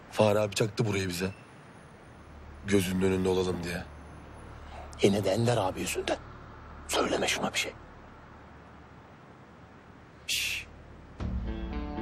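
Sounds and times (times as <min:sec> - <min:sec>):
night ambience: 0:00.0 - 0:12.0.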